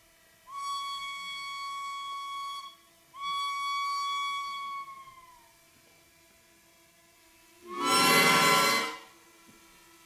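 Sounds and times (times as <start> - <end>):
low reed pipe tones: 7.6 - 9.1
reed pipe high note: 7.6 - 9.1.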